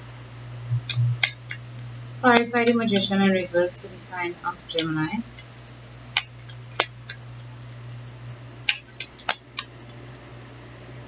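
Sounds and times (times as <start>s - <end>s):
cards clicking and snapping: 0.9s - 3.9s, 4.7s - 8.0s, 8.7s - 10.5s.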